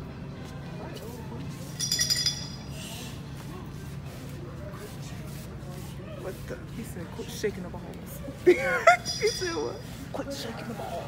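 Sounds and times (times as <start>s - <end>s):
small bell jingling: 1.8s - 2.7s, 8.9s - 9.9s.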